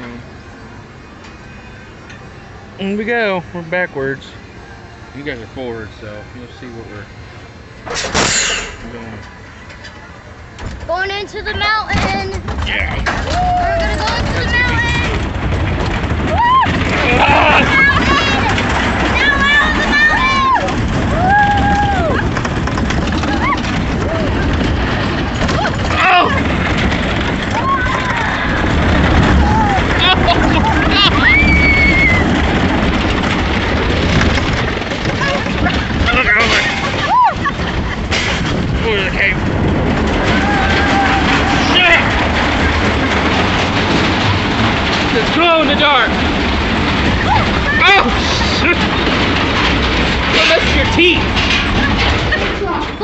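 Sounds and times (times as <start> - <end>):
roller coaster rumbling on wooden track: 0.0 - 53.0
riders shouting and whooping: 13.1 - 14.8, 16.2 - 22.4, 27.5 - 32.4, 35.3 - 37.8, 40.2 - 42.1.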